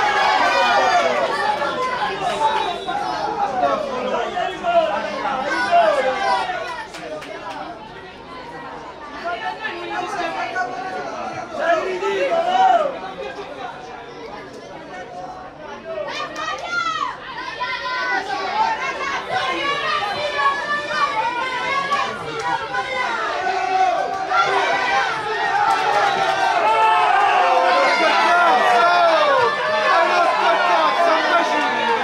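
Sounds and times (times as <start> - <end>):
crowd of voices chattering: 0.0 - 32.0.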